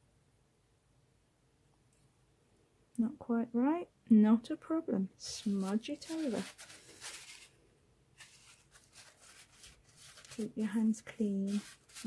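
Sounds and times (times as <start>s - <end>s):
cloth rustling: 5.3s - 7.6s, 8.2s - 12.0s.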